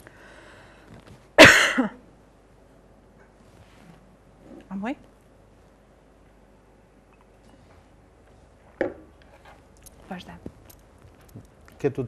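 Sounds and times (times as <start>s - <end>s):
woman coughing: 1.4s - 2.0s.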